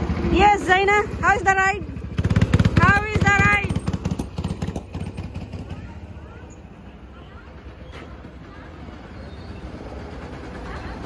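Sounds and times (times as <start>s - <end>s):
go-karts rumbling: 0.0s - 11.0s.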